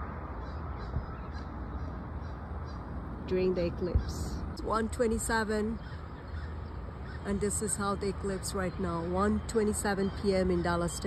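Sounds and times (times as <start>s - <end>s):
faint bird calls: 0.0s - 3.0s, 3.8s - 7.9s
wind rumble on microphone: 0.0s - 10.8s.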